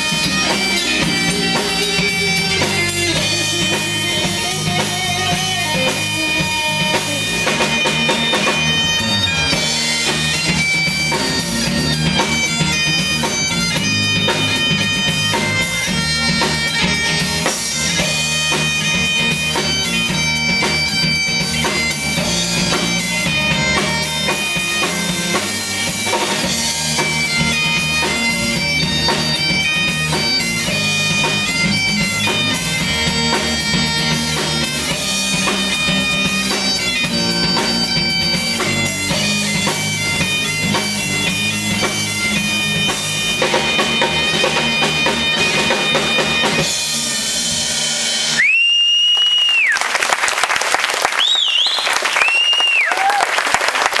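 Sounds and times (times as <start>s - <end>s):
bagpipes playing a melody: 0.0s - 48.4s
electric guitar: 0.0s - 48.6s
drum kit: 0.0s - 54.0s
high-pitched whistles: 48.3s - 49.9s, 51.2s - 53.2s
audience applauding: 48.4s - 54.0s.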